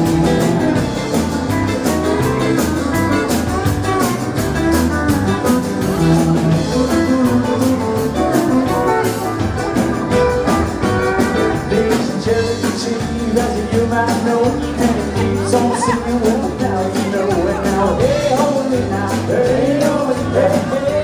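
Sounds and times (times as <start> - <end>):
drum kit beat: 0.0 - 21.0
electric bass: 0.0 - 21.0
guitars: 0.0 - 21.0.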